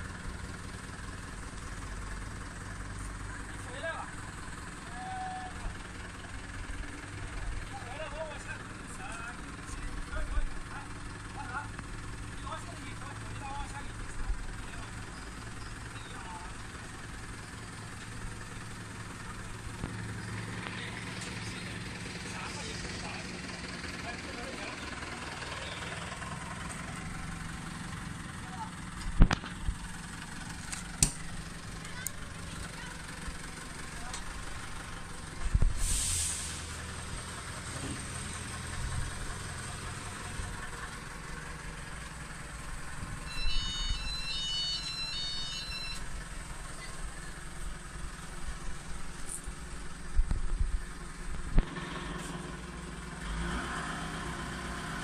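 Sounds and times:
engine idling: 0:00.0 - 0:55.0.

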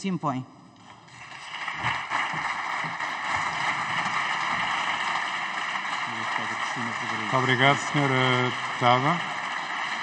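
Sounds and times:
dense clapping: 0:01.2 - 0:10.0.

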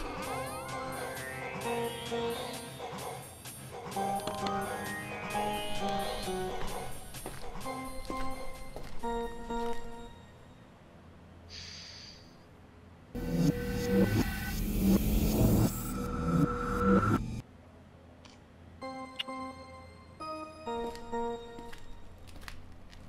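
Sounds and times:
background music: 0:00.0 - 0:10.6, 0:18.8 - 0:22.6.

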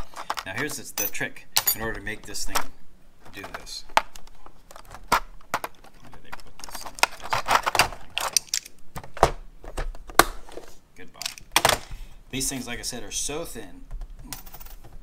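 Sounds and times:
plastic and metal clicks and rattles: 0:02.5 - 0:10.3.

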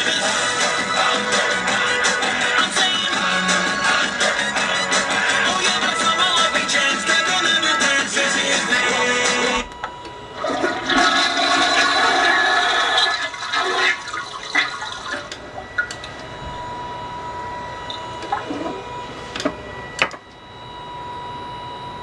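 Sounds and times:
toilet flushing: 0:10.4 - 0:15.3
toilet tank refilling: 0:10.4 - 0:15.9.

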